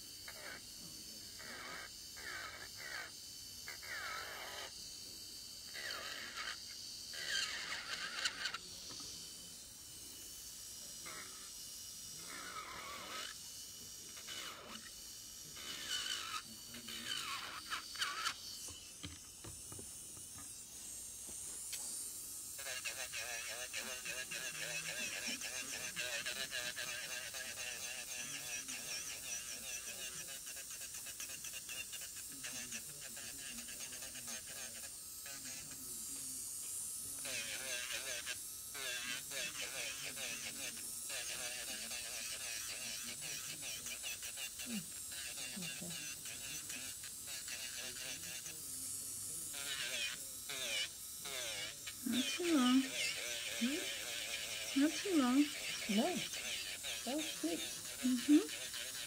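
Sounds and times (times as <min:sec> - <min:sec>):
indistinct background talk: 0:07.3 - 0:22.0, 0:22.6 - 0:59.0.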